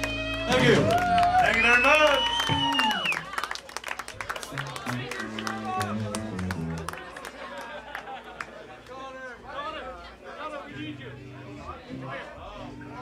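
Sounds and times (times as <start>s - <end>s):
rock band playing: 0.0s - 1.6s, 4.6s - 7.0s
audience clapping: 0.0s - 9.1s
low plucked notes: 4.6s - 7.0s.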